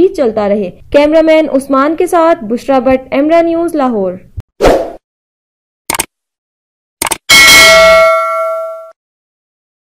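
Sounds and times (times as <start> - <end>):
mouse click sounds: 7.0 - 7.2
loud bell ding: 7.3 - 9.0.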